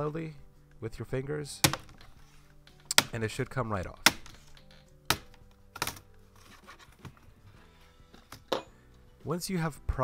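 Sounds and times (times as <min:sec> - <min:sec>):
plastic clips snapping: 0:02.7 - 0:03.2, 0:04.0 - 0:06.0.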